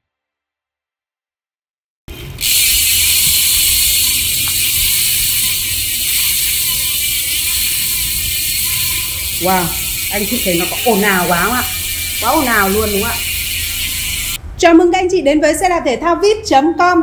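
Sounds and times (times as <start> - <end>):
bicycle freehub ratcheting clicks: 2.1 - 14.4.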